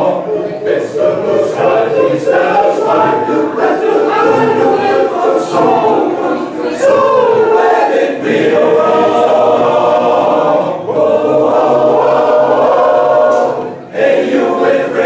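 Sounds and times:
men's choir singing a cappella: 0:00.0 - 0:15.0.

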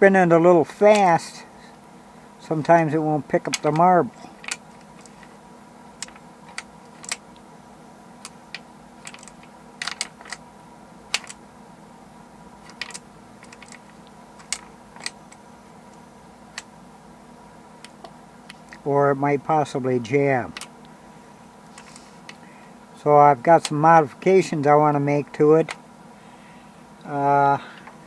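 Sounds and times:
faint steady hum: 0:00.0 - 0:28.0.

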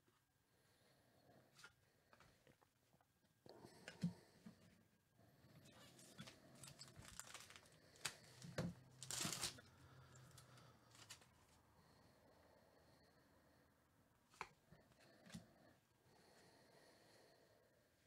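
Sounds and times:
foil wrapper crinkling: 0:06.0 - 0:09.6
foil wrapper ripping: 0:06.6 - 0:08.4, 0:09.0 - 0:09.6.

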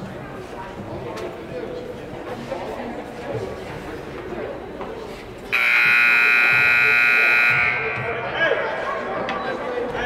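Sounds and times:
murmur of voices: 0:00.0 - 0:10.0
scoreboard horn buzz: 0:05.5 - 0:08.2.

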